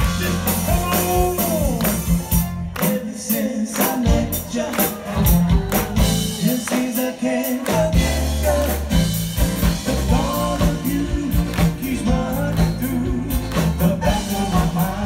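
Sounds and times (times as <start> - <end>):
bass: 0.0 - 15.0
drum kit: 0.0 - 15.0
vocal group singing: 0.0 - 15.0.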